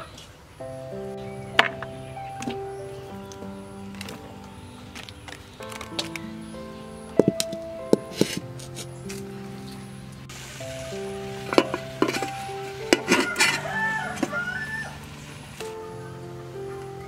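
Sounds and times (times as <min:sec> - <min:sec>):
sizzling hiss: 0:00.3 - 0:17.0
background music: 0:00.6 - 0:17.0
cookware clanking together: 0:12.9 - 0:13.6
rooster crowing: 0:13.0 - 0:15.2.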